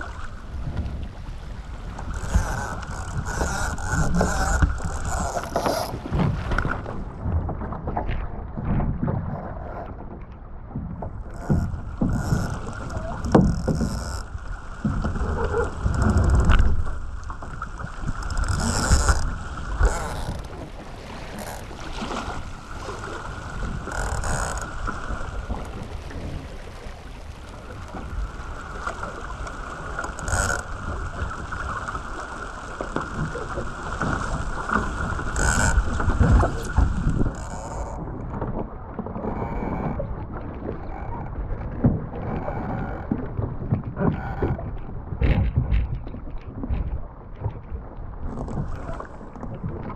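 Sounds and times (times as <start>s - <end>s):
dinghy rushing through choppy water: 0.0s - 49.9s
waves slapping against hull: 0.0s - 49.9s
wind rumble on microphone: 0.0s - 49.9s
wind buffeting microphone: 32.8s - 49.9s.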